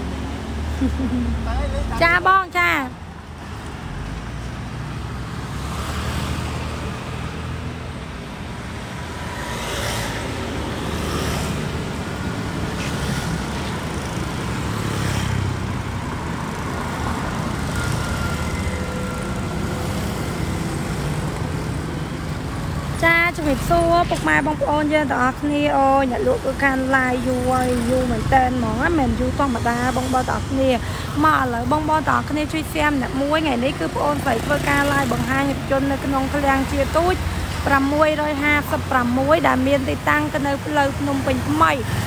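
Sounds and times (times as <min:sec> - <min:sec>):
low rumble of road traffic: 0:00.0 - 0:42.0.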